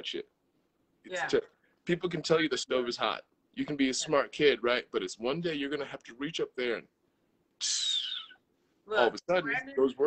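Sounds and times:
mouth hiss with faint whistle: 0:07.6 - 0:08.4.

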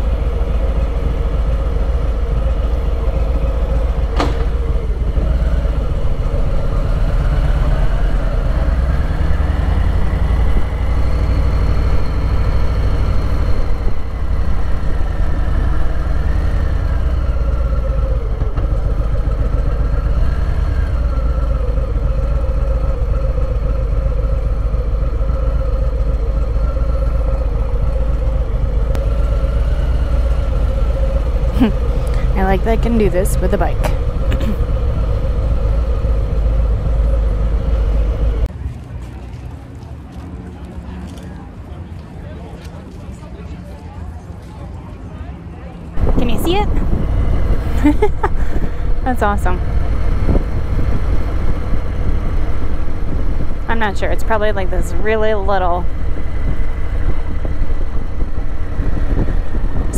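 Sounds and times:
motorcycle engine rumbling: 0:00.0 - 0:41.4, 0:45.2 - 0:59.9.

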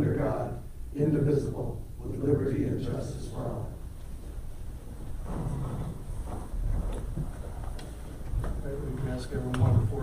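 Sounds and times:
people shuffling into chairs: 0:03.8 - 0:10.0.

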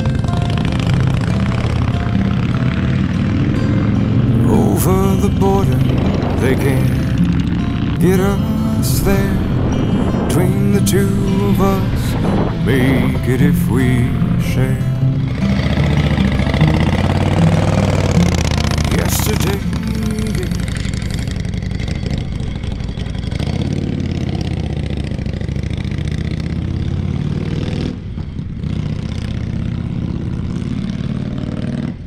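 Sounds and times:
motorcycle engine revving: 0:00.0 - 0:32.0
people talking: 0:04.3 - 0:07.2, 0:08.0 - 0:09.5, 0:10.3 - 0:15.0, 0:18.8 - 0:21.3.

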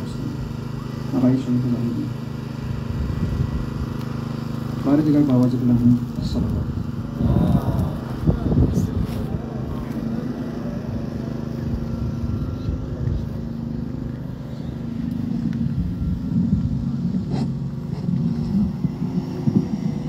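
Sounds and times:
low steady rumbling: 0:04.8 - 0:20.0.

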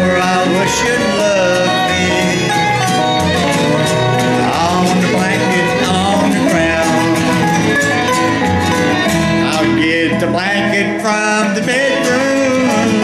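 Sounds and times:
bluegrass band instrumental: 0:00.0 - 0:13.0.

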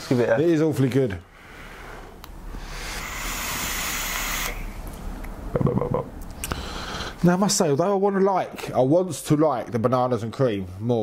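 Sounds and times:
air hissing through atomizer: 0:01.9 - 0:04.8
vape coil sizzling: 0:02.6 - 0:04.8.

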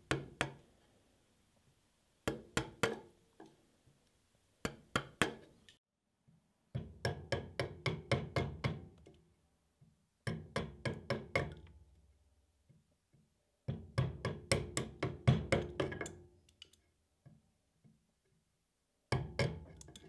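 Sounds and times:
chisel knocks: 0:00.0 - 0:00.7, 0:02.2 - 0:03.5, 0:04.6 - 0:05.6, 0:06.7 - 0:09.0.

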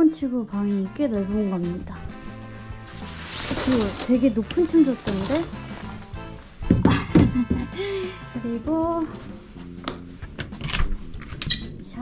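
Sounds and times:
door latch clicks: 0:09.9 - 0:11.6
door squeak: 0:10.7 - 0:11.8.

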